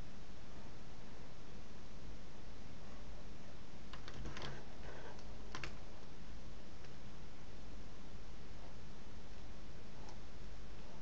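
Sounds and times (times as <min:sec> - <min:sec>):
steady background hiss: 0:00.0 - 0:11.0
computer keys clicking: 0:03.9 - 0:05.8.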